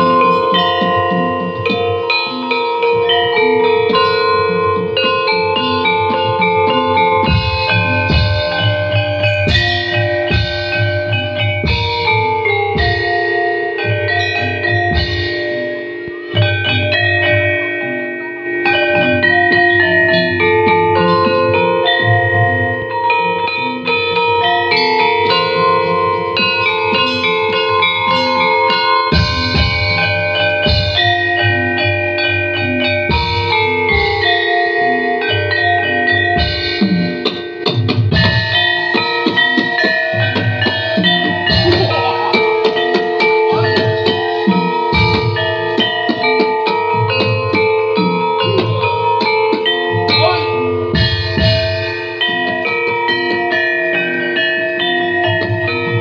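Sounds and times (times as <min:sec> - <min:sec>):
gamelan ensemble playing: 0:00.0 - 0:56.0.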